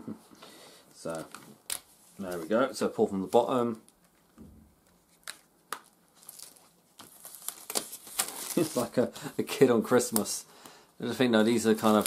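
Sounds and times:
plastic wrap crackling: 0:01.0 - 0:10.4, 0:11.4 - 0:12.0
plastic wrap crinkling: 0:01.0 - 0:10.4, 0:11.4 - 0:12.0.

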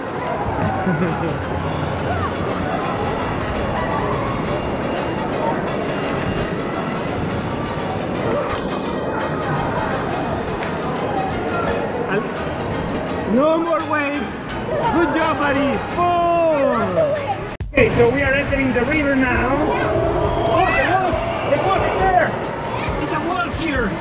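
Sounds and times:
babble of many voices: 0:00.0 - 0:24.0
music playing: 0:00.5 - 0:24.0.

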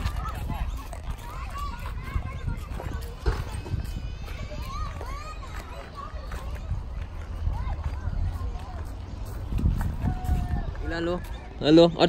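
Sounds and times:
footsteps on wood-chip mulch: 0:00.0 - 0:11.6
wind rumble on microphone: 0:00.0 - 0:12.0.

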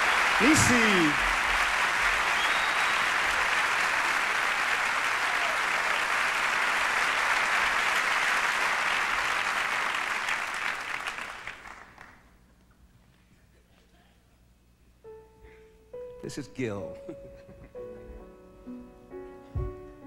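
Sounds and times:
large audience applauding: 0:00.0 - 0:12.4.

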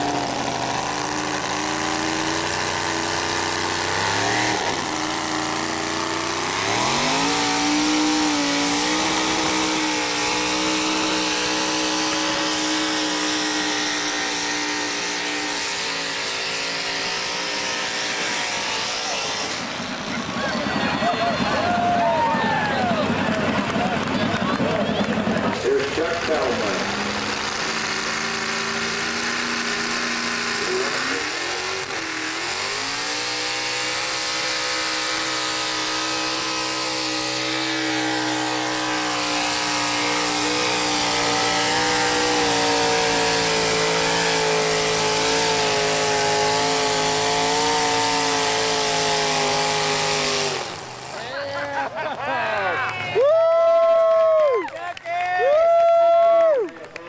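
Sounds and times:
truck engine revving hard: 0:00.0 - 0:54.6.

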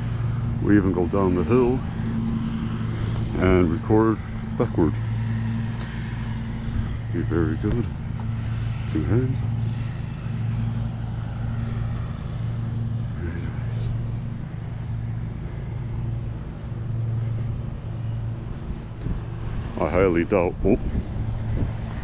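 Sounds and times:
lawn mower engine running: 0:00.0 - 0:22.0.

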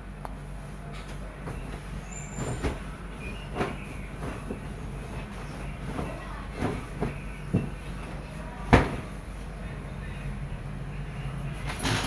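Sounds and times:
steady low hum: 0:00.0 - 0:12.0
bedsheet rustling and flapping: 0:00.8 - 0:09.5.

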